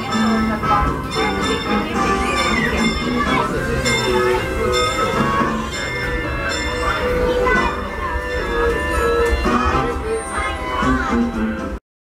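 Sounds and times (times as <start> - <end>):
background music: 0.0 - 11.8
steam locomotive bell ringing: 0.0 - 11.8
train pulling out: 0.0 - 11.8
voices: 0.0 - 11.8.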